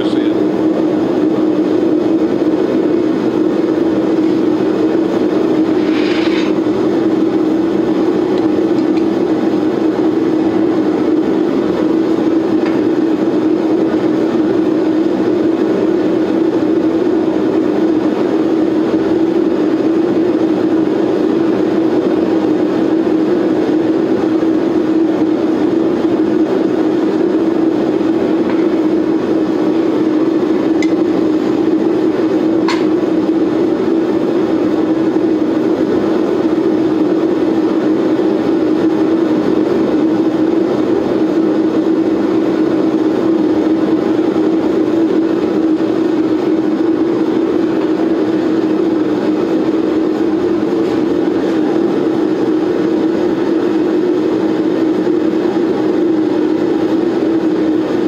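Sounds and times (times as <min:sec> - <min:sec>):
gas forge rushing and humming: 0:00.0 - 0:58.0.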